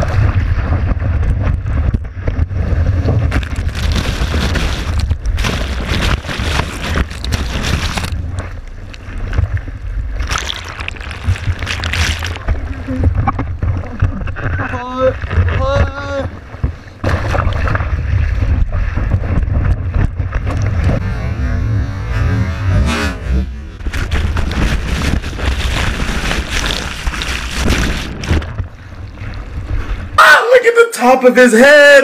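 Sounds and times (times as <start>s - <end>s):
low rumble of water: 0.0s - 22.2s, 23.2s - 30.2s.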